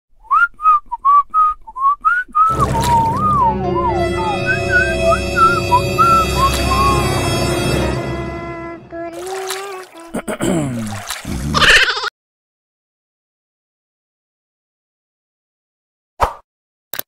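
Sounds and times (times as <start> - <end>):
person whistling a tune: 0.2 - 7.2
background music with held chords: 2.6 - 9.1.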